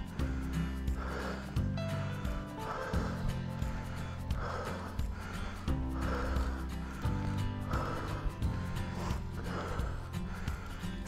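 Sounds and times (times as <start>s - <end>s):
background music with bass line: 0.0s - 11.0s
heavy breathing: 0.0s - 11.0s.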